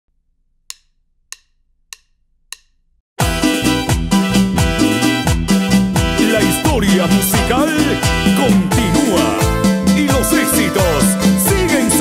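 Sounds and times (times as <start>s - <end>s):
wooden percussion clicks: 0.6s - 2.9s.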